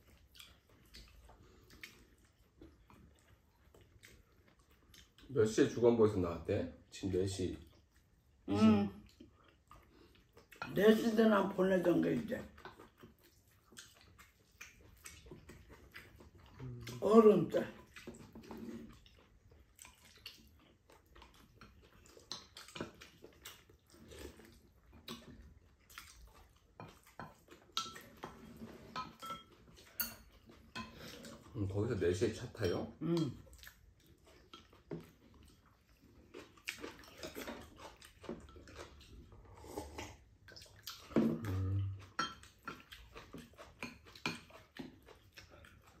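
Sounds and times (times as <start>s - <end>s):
chewing: 0.0s - 46.0s
slurping soup: 17.8s - 31.6s, 33.7s - 46.0s
short low vocal sound: 41.3s - 42.0s.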